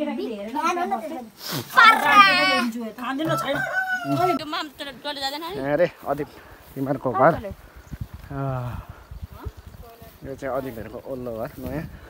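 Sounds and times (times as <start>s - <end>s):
people talking: 0.0s - 5.6s
rooster crowing: 3.3s - 4.5s.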